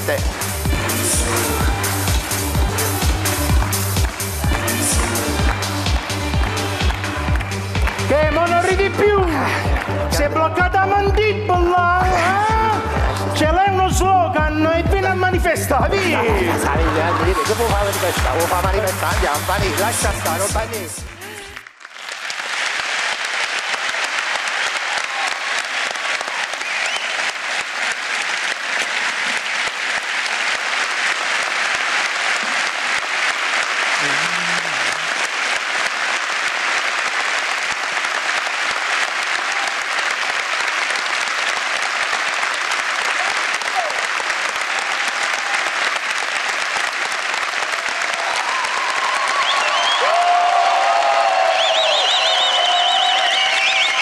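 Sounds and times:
audience applauding: 0.0s - 13.7s, 15.4s - 54.0s.

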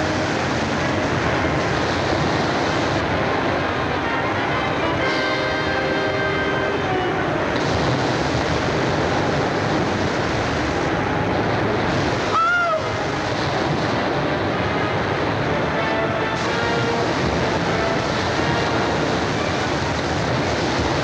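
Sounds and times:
churning white water: 0.0s - 21.0s
music: 0.0s - 21.0s.

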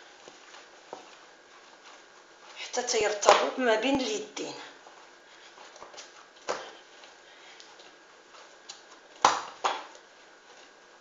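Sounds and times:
dough rubbing in bowl: 0.0s - 7.2s, 7.8s - 11.0s.

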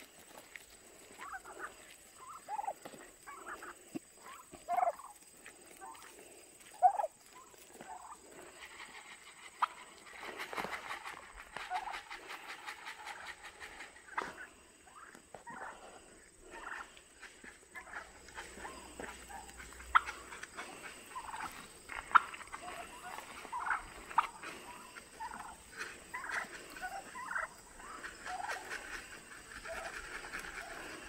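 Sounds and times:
footsteps on gravel: 0.0s - 12.5s, 15.1s - 31.0s
turkeys calling: 0.0s - 31.0s.

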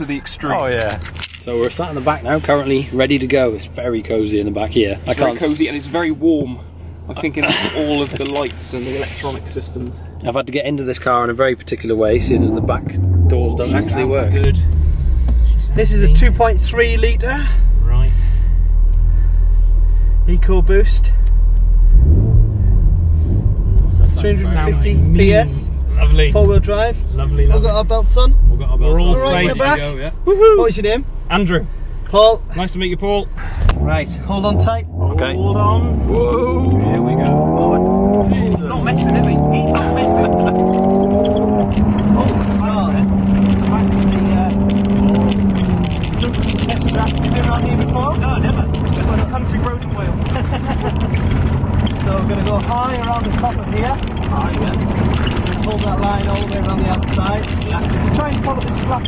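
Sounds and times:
car engine idling and revving: 0.0s - 59.0s.

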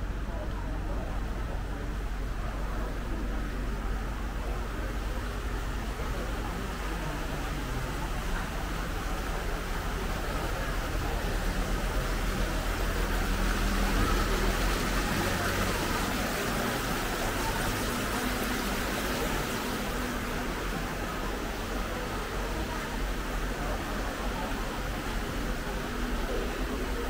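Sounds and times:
people talking: 0.0s - 27.0s.

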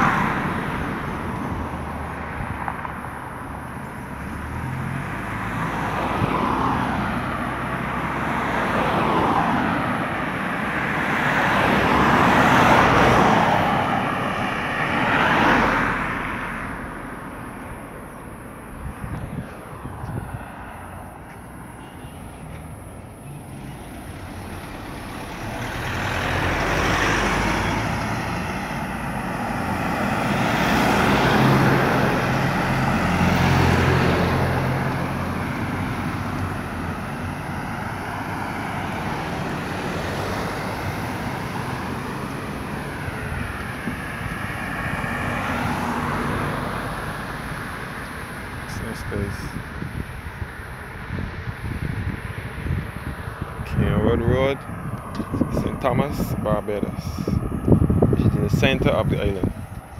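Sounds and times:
cars driving past: 0.0s - 59.9s.

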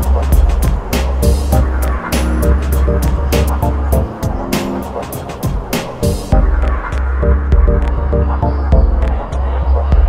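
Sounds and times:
deep sustained bassline: 0.0s - 5.0s, 6.3s - 10.0s
short chord stabs: 1.2s - 9.1s.

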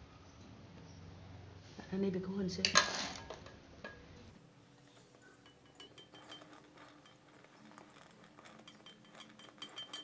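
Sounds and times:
metal spatula scraping steel bowl: 4.9s - 10.0s
spatula clinking on bowl: 5.0s - 10.0s.

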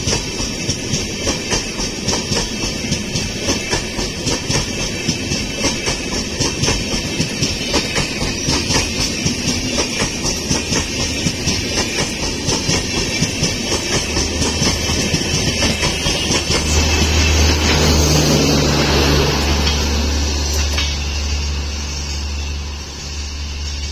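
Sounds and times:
train wheels clicking over rail joints: 0.0s - 22.5s.

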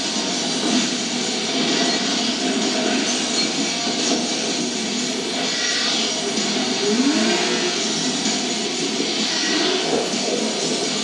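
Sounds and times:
loud engine-like roar: 4.1s - 11.0s.

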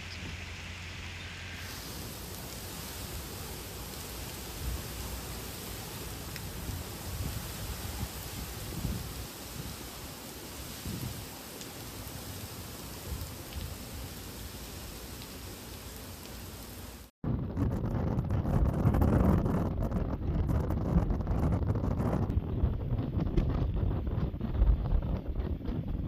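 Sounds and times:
heavy rain hissing: 0.0s - 17.1s
wind buffeting microphone: 2.3s - 11.3s, 17.2s - 26.0s.

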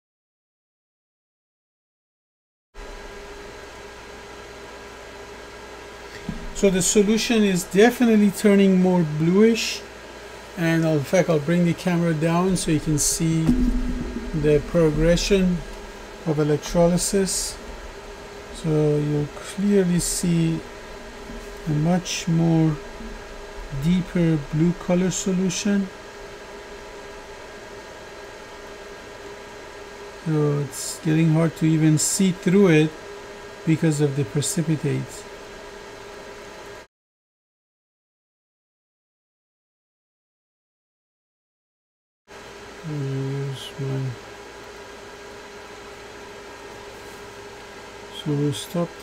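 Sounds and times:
faint hum: 2.8s - 36.9s, 42.4s - 49.0s
background hiss: 6.0s - 26.0s
faint steady tone: 12.4s - 17.9s.

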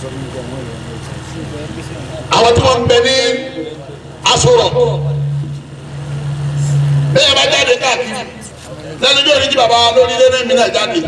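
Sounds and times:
loud low-pitched hum: 0.0s - 11.0s.

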